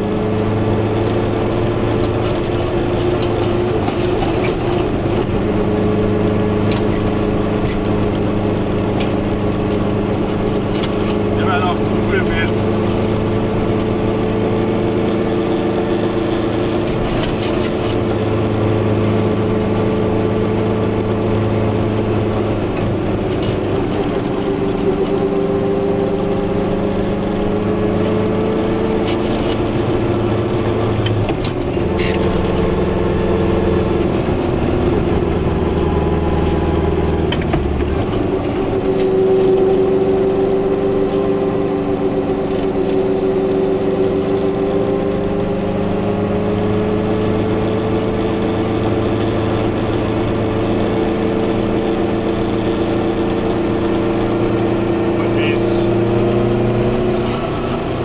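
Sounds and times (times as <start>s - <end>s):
two-stroke car engine running: 0.0s - 58.0s.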